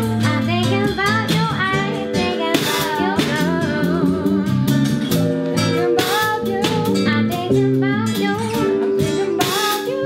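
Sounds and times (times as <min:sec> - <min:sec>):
person singing: 0:00.0 - 0:04.9, 0:05.6 - 0:10.0
electric and acoustic guitars: 0:00.0 - 0:10.0.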